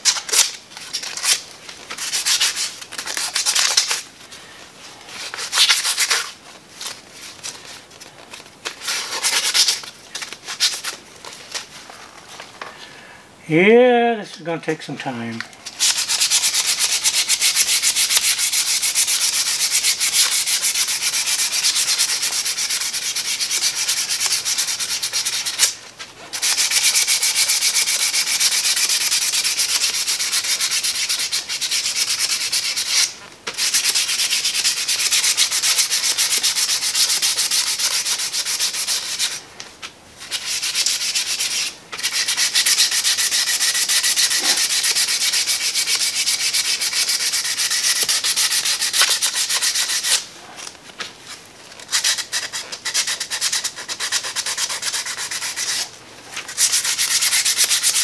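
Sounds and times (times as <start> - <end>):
sandpaper rubbing wood: 0.3 - 4.0, 5.1 - 6.4, 8.8 - 9.9, 15.8 - 39.4, 40.2 - 50.2, 51.9 - 55.9, 56.5 - 58.0.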